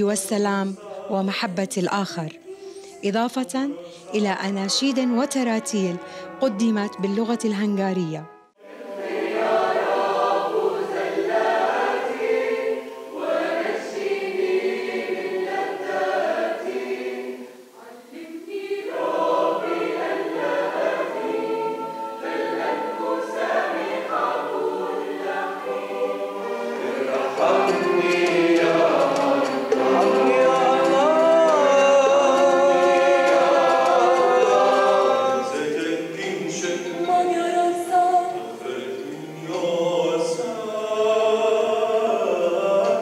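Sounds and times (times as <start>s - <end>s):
choir singing a hymn: 0.0s - 7.3s, 8.6s - 43.0s.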